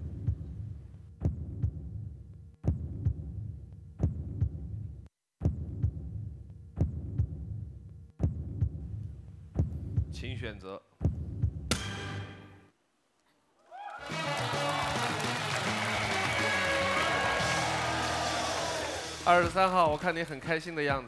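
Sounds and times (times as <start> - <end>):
heartbeat double thump: 9.6 - 10.2, 11.0 - 11.7.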